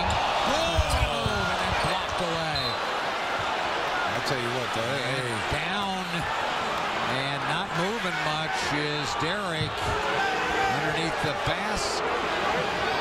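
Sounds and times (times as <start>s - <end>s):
arena crowd noise: 0.0s - 13.0s.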